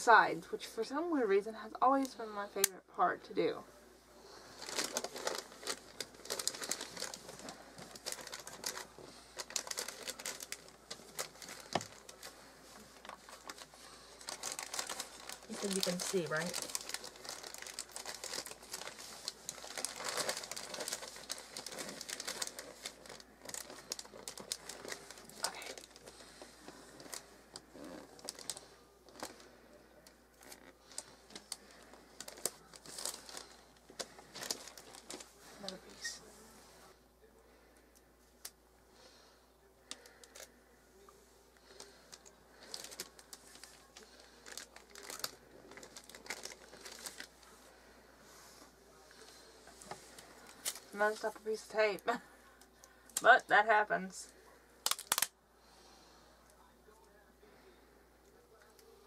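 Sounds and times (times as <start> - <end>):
wrapping paper crinkling: 4.2 - 36.2, 41.6 - 51.8, 54.8 - 55.3.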